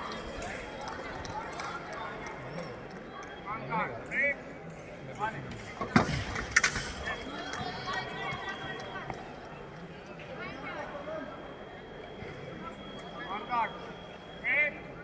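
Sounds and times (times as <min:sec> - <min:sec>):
echoing sports hall ambience: 0:00.0 - 0:15.0.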